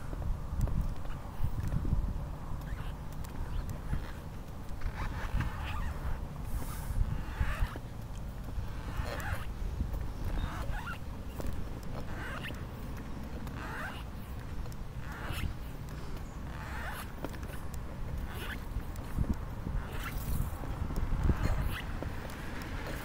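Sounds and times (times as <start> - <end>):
wheelchair rolling on concrete: 2.4 - 23.0.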